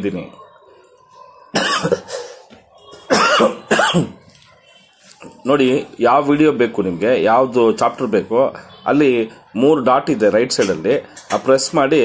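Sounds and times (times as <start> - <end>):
man coughing: 1.6 - 2.4, 3.1 - 4.2.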